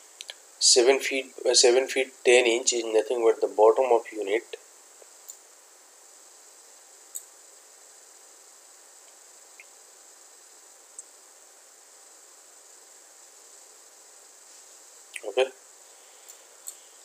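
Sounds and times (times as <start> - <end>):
high-pitched microphone hiss: 0.0 - 17.0.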